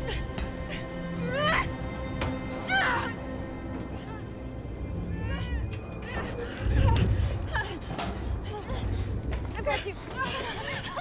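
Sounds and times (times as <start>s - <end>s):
film score with low rumble: 0.0s - 11.0s.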